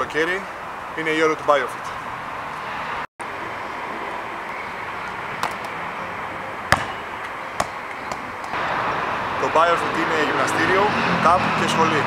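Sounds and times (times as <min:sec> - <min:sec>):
outdoor background noise: 0:00.0 - 0:12.0
basketball bouncing on concrete: 0:05.4 - 0:05.7, 0:06.7 - 0:07.0, 0:07.6 - 0:08.3.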